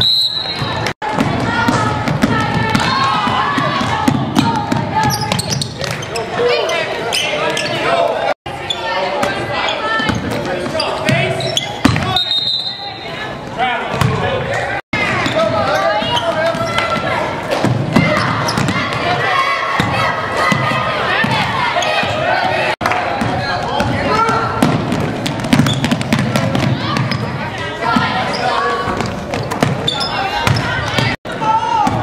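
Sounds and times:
people calling and shouting: 0:00.0 - 0:32.0.

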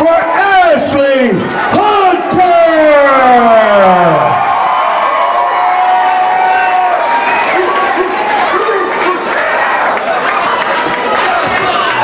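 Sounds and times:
high held yell: 0:00.0 - 0:09.9
crowd cheering: 0:00.0 - 0:12.0
falling whoop: 0:04.1 - 0:08.7.

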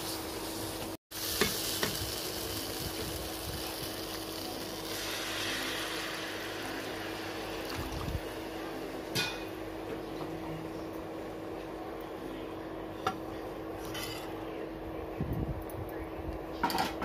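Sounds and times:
masala sizzling in a pan: 0:00.0 - 0:09.9.

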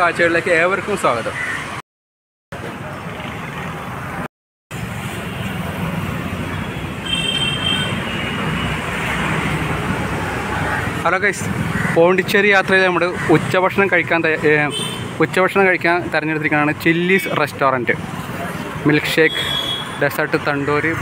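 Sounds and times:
passing vehicles hum: 0:02.6 - 0:21.0.

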